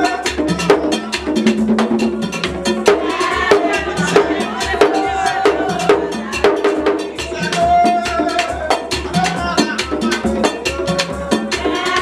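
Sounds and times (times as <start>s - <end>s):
drums beating: 0.0s - 12.0s.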